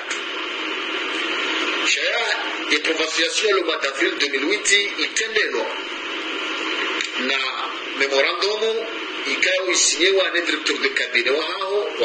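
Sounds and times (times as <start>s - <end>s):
static hiss: 0.0s - 12.0s.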